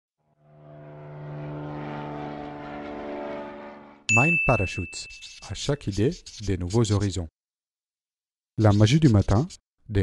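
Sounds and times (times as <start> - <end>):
low droning tone: 0.2 - 4.1.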